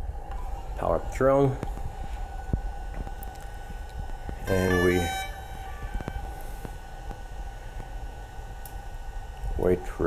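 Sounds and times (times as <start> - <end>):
drone steady whine: 0.0 - 10.0.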